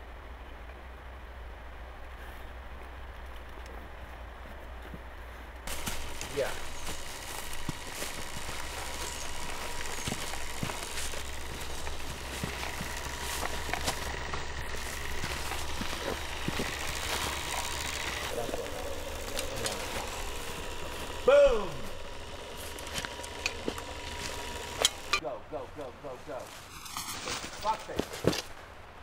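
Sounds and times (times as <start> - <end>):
low hum: 5.6 - 25.5.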